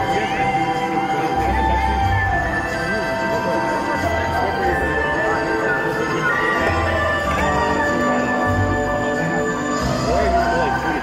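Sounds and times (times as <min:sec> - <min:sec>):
folk song over loudspeakers: 0:00.0 - 0:11.0.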